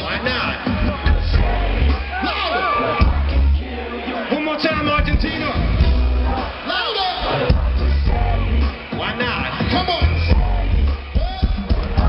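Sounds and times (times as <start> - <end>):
heavy bass beat: 0.0 - 12.0
rapped vocals: 0.0 - 12.0.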